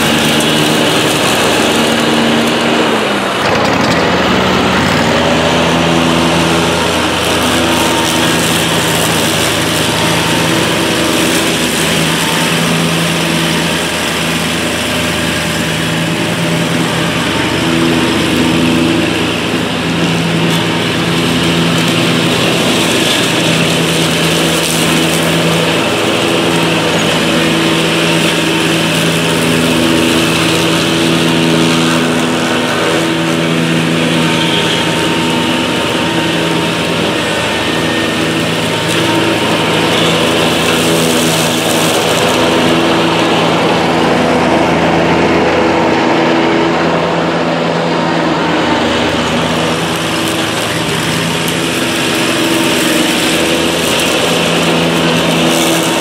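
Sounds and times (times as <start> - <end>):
riding mower running: 0.0 - 56.0.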